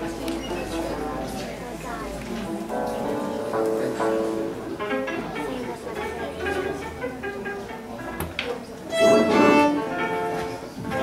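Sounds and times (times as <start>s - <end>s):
fiddle bowed phrases: 2.6s - 11.0s.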